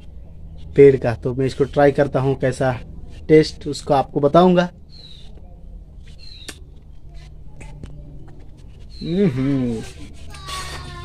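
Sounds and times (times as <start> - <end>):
bird chirps: 4.9 - 5.4, 6.1 - 6.6, 8.9 - 9.6
man humming hmm: 9.0 - 10.0.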